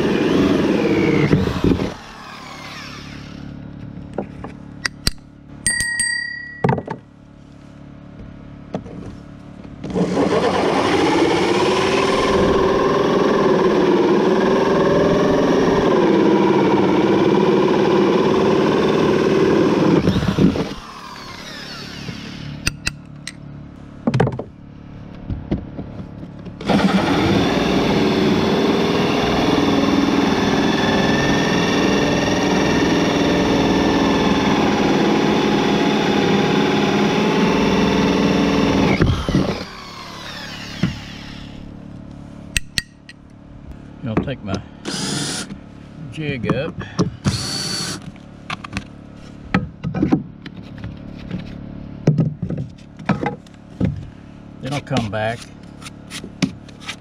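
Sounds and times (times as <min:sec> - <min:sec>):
drill hole saw cutting wood: 0:00.0 - 0:03.6, 0:09.9 - 0:22.8, 0:26.6 - 0:41.7, 0:44.8 - 0:45.6, 0:47.2 - 0:48.1.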